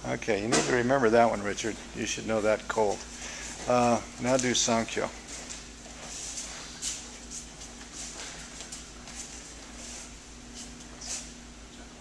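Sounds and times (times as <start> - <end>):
low electrical hum: 0.0 - 12.0
soft rustles of clothing: 2.7 - 11.4.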